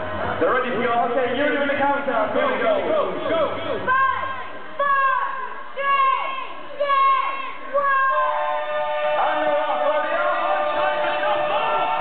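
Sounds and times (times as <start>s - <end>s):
crowd chanting a countdown: 3.1s - 12.0s
crowd cheering: 3.8s - 12.0s.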